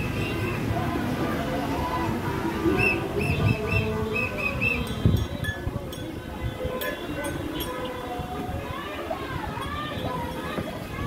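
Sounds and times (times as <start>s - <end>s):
cars driving by: 0.0s - 11.0s.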